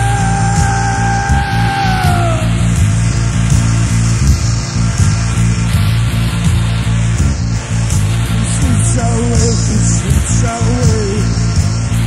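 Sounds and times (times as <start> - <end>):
bass-heavy rock music: 0.0 - 12.0
steady drum beat: 0.0 - 12.0.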